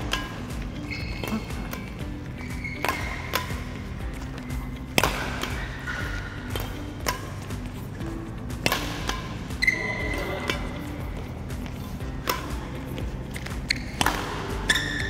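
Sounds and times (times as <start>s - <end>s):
background music: 0.0s - 15.0s
rackets striking shuttlecocks: 0.0s - 15.0s.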